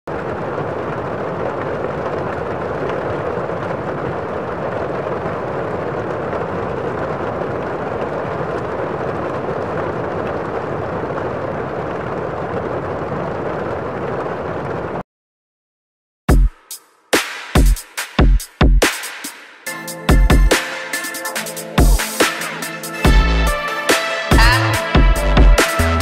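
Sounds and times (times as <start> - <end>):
steady rushing noise: 0.1 - 15.0.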